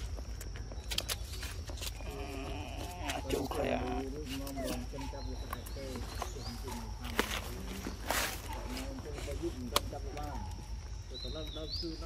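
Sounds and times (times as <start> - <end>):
people talking indistinctly: 2.1 - 12.0.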